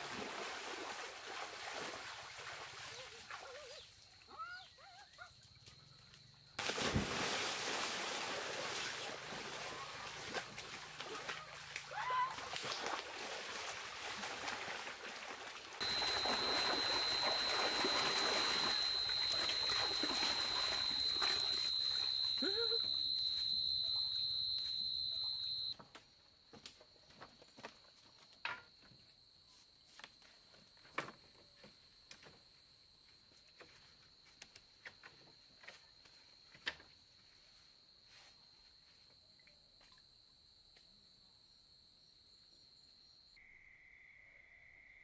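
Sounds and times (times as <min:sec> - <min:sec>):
high-pitched insect trill: 0:15.8 - 0:25.7.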